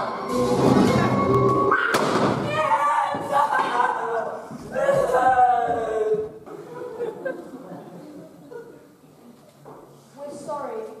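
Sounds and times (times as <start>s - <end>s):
music: 0.0s - 2.2s.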